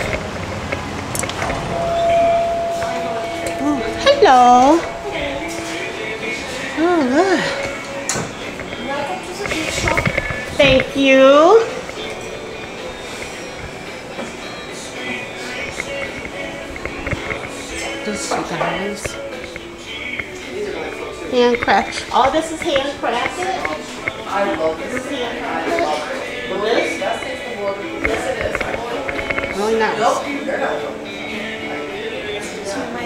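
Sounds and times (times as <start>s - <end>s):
faint background music: 0.0s - 33.0s
street and room noise hiss: 0.0s - 33.0s
steady electronic tone: 0.8s - 7.2s
small clicks and rustles: 8.6s - 10.9s, 15.5s - 17.8s.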